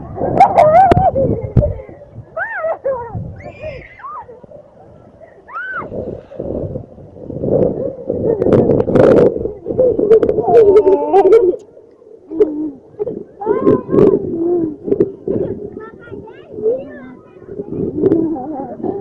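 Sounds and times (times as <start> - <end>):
children laughing and shouting: 0.0 - 5.9, 7.9 - 11.7, 12.3 - 19.0
children hooting: 2.4 - 4.4, 5.5 - 5.9.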